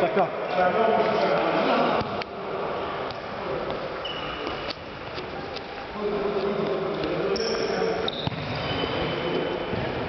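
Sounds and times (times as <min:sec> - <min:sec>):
shoes squeaking on floor: 0:03.7 - 0:05.6, 0:06.6 - 0:10.0
ball kicked and bouncing: 0:08.1 - 0:08.7.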